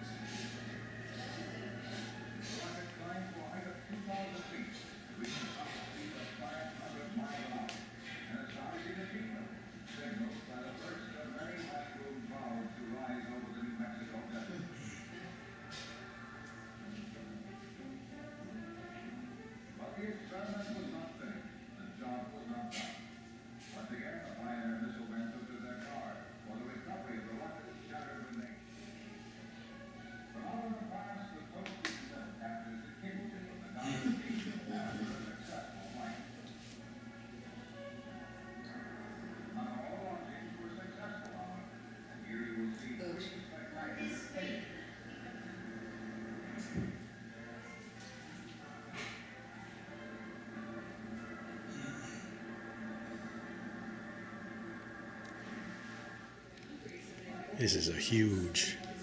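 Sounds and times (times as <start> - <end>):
faint music: 0.0 - 59.0
indistinct background speech: 0.0 - 59.0
low room hum: 0.0 - 59.0
indistinct voices: 57.6 - 58.8.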